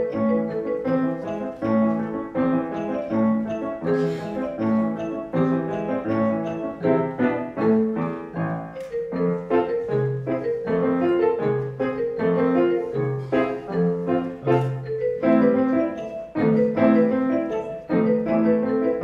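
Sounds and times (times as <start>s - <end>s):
piano duet: 0.0s - 19.0s.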